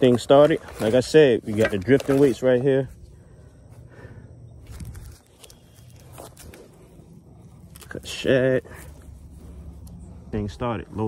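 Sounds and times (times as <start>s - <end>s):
soft rustles of gear: 0.0s - 3.0s, 4.6s - 11.0s
low rumble: 2.9s - 11.0s.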